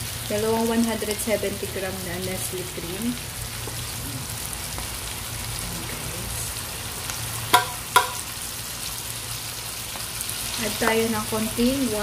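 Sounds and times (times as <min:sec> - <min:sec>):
food sizzling in a pan: 0:00.0 - 0:12.0
sharp knocks: 0:07.5 - 0:08.2.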